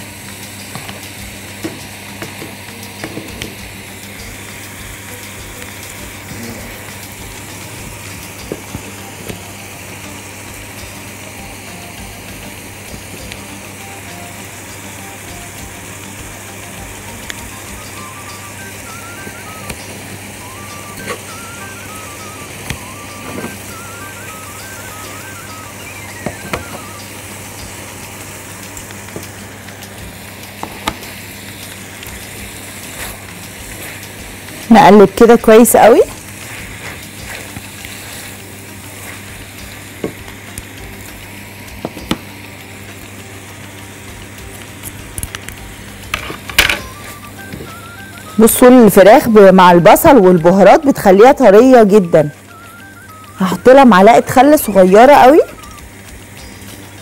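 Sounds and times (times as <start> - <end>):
food sizzling in a frying pan: 0.0 - 57.0
spatula against pan: 32.2 - 34.7, 36.1 - 40.8.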